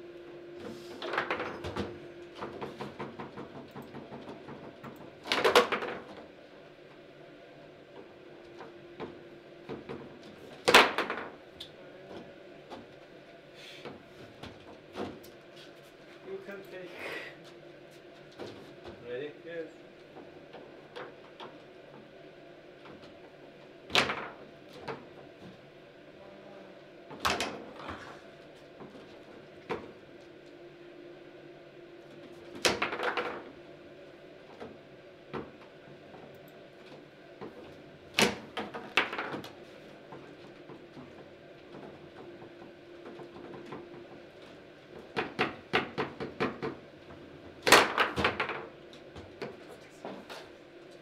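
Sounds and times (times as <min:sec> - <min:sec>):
ball knocking plastic players: 0:38.2 - 0:39.5, 0:47.6 - 0:49.6.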